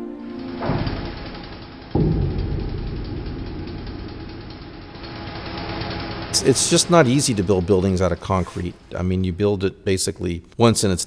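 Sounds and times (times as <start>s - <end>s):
machine engine running steadily: 0.3s - 8.9s.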